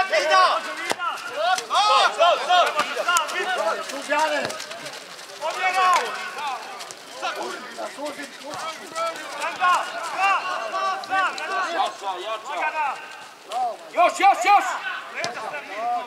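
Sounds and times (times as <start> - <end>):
men shouting: 0.0 - 16.0.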